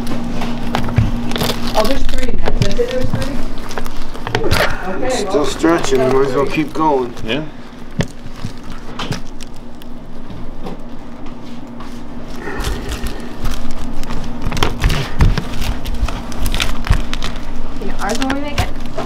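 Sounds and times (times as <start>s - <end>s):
steady low hum: 0.0s - 19.0s
brittle candy cracking: 0.6s - 10.5s, 12.3s - 19.0s.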